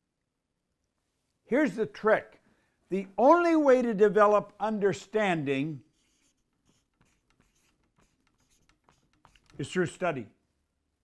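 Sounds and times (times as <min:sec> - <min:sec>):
marker writing on paper: 0:05.8 - 0:09.7.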